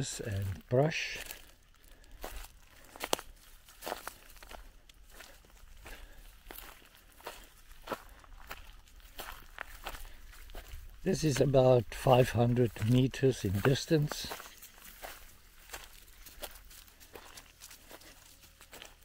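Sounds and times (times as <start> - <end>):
footsteps on dry leaves: 0.0 - 19.0.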